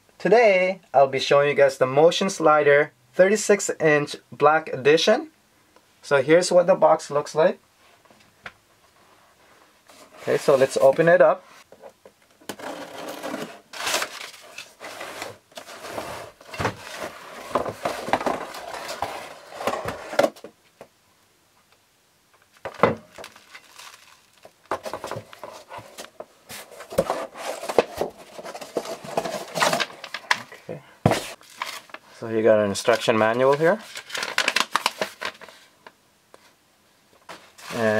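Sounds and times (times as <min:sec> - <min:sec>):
bubble wrap crinkling: 0:22.5 - 0:26.1, 0:31.2 - 0:32.2, 0:33.0 - 0:35.8.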